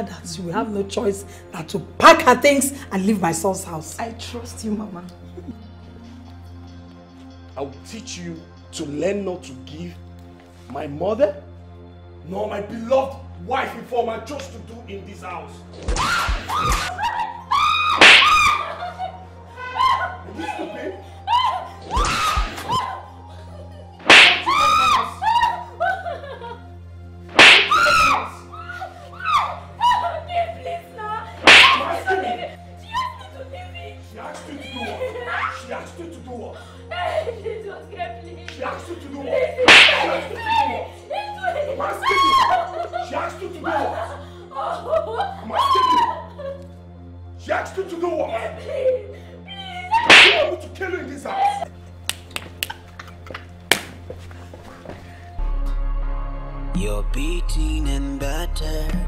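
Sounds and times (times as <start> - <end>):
faint background music: 0.0 - 59.0
sharp slap-like blows: 15.8 - 16.9, 18.0 - 18.6, 21.9 - 22.8, 24.0 - 24.7, 27.3 - 28.1, 31.4 - 32.0, 39.7 - 40.2, 50.0 - 50.5, 53.7 - 54.0
strap lashing: 18.0 - 18.6, 24.0 - 24.8, 27.3 - 28.1, 31.4 - 32.0, 39.7 - 40.2, 50.0 - 50.5
woman crying out: 19.5 - 23.2, 44.6 - 46.3.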